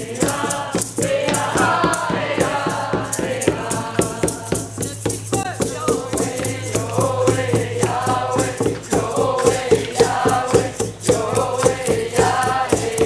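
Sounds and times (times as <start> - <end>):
group chanting in unison: 0.0 - 4.8, 5.7 - 13.0
hand drum beat: 0.0 - 13.0
rattle shaking: 0.0 - 13.0.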